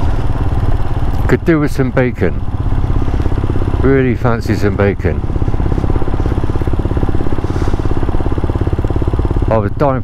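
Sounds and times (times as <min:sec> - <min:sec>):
motorcycle engine cruising: 0:00.0 - 0:10.0.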